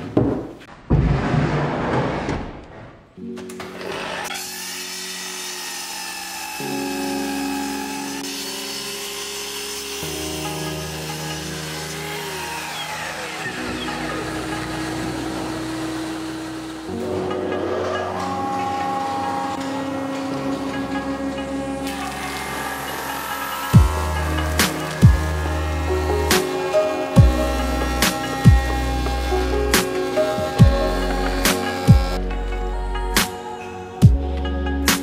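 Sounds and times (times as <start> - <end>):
power tool noise: 3.2 - 32.3
music of sustained chords: 4.7 - 35.0.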